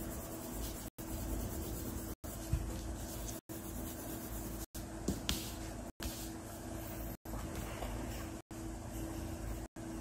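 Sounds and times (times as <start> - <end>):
pencil scratching on paper: 0.0 - 4.7.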